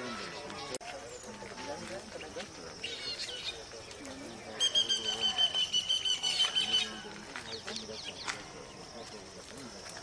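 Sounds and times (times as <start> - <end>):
faint voices: 0.0 - 10.0
bird trilling: 4.6 - 7.0.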